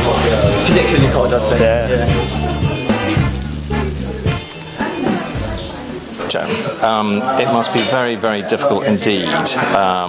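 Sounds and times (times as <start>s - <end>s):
background music: 0.0s - 6.8s
oil sizzling in a frying pan: 0.8s - 7.0s.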